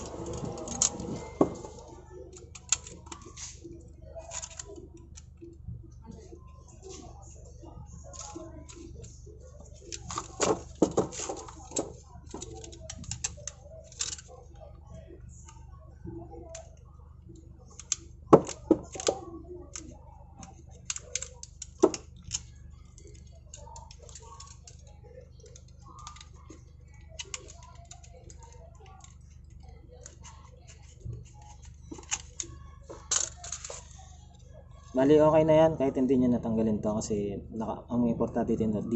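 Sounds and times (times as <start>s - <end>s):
hard plastic clicks and snaps: 0.0s - 5.5s, 9.9s - 14.3s, 17.6s - 34.4s.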